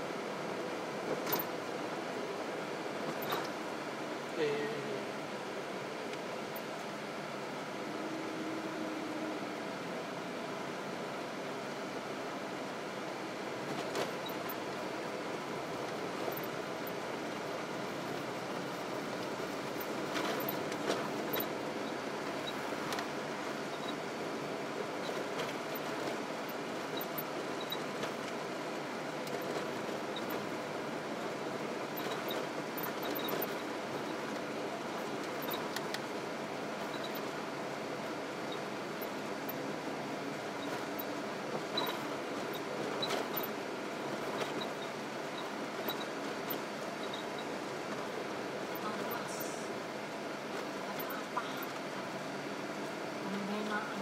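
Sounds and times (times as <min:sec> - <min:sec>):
car road and engine noise: 0:00.0 - 0:54.0.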